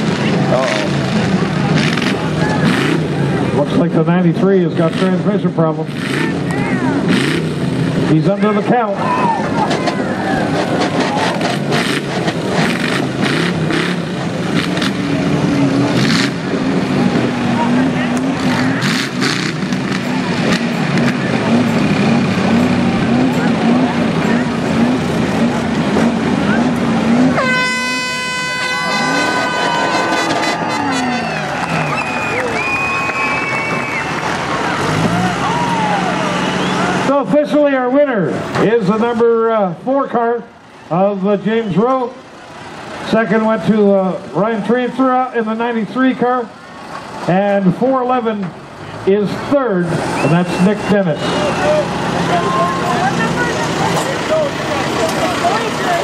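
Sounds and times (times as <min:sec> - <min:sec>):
car engines revving: 0:00.0 - 0:56.0
crowd noise: 0:00.0 - 0:56.0
air horn blowing: 0:27.3 - 0:31.1.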